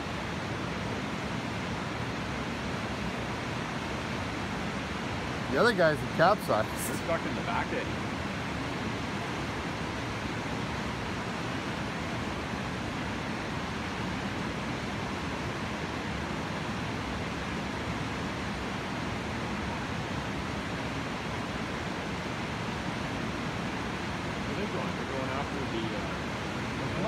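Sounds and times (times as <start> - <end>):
whitewater river rushing: 0.0 - 27.0.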